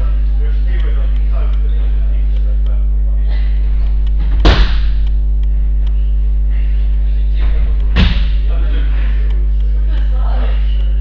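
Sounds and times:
low electrical hum: 0:00.0 - 0:11.0
loud slapping thuds on mats: 0:04.2 - 0:05.0, 0:07.9 - 0:08.4.

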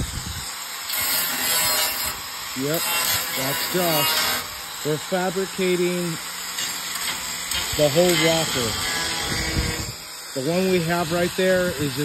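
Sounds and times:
power tool cutting sheet steel: 0:00.0 - 0:12.0.

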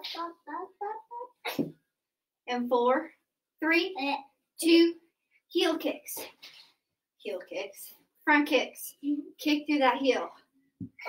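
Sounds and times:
person speaking syllables: 0:00.0 - 0:01.4.

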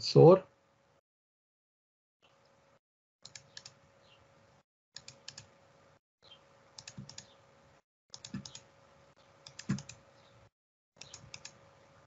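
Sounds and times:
mouse and keyboard clicks: 0:03.3 - 0:03.8, 0:05.0 - 0:05.5, 0:06.8 - 0:07.4, 0:08.2 - 0:08.7, 0:09.4 - 0:10.0, 0:11.0 - 0:11.6.

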